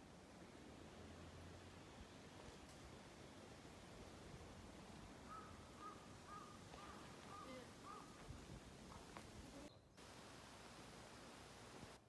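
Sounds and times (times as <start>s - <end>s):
faint crow cawing: 5.3s - 8.2s.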